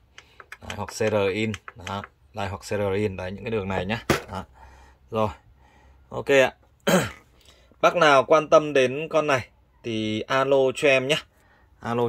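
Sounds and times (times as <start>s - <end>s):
man speaking: 0.6s - 5.4s, 7.8s - 12.0s.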